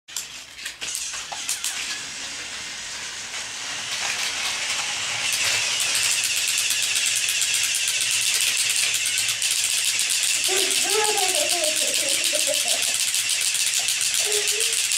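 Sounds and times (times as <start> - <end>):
toy train motor whirring: 0.1 - 14.9
fast even clicking: 5.3 - 14.9.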